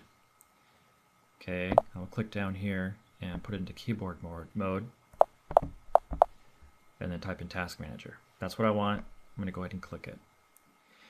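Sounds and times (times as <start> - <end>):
taps on tablet keyboard: 5.2 - 6.3.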